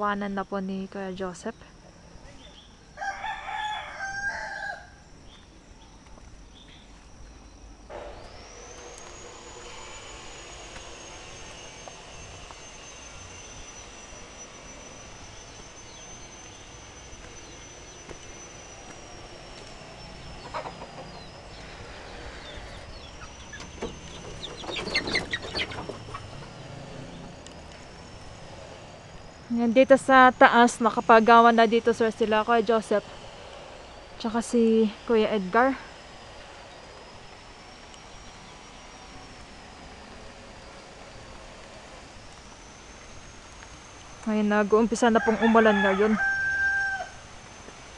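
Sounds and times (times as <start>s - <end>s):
high insect drone: 0.0s - 47.9s
chickens clucking: 20.4s - 26.6s.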